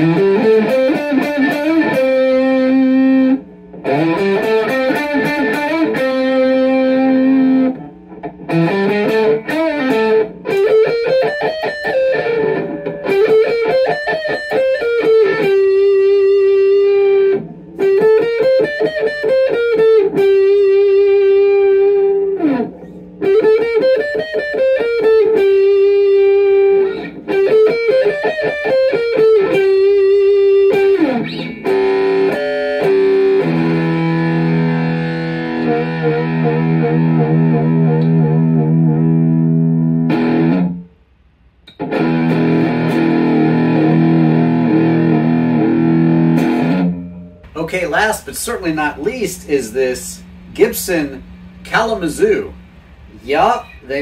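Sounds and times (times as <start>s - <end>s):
electric guitar playing: 0.0s - 54.0s.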